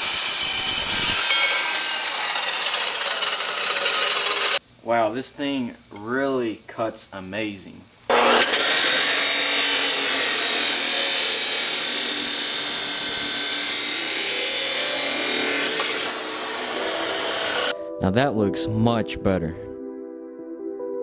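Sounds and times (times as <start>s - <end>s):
chop saw cutting steel: 0.0s - 4.6s, 8.1s - 17.7s.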